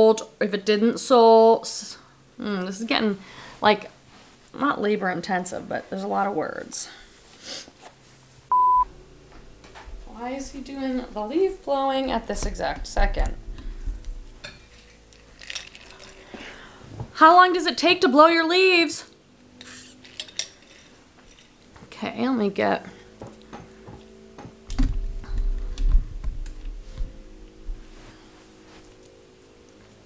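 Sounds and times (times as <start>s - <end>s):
faint room noise: 0.0s - 30.0s
short electronic beep: 8.5s - 8.9s
person sipping drink: 15.1s - 16.7s.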